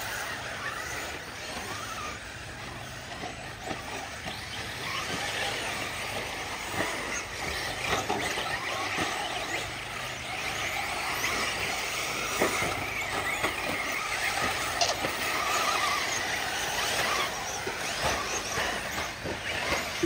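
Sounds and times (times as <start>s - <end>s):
rc car motors whining: 0.0s - 20.0s.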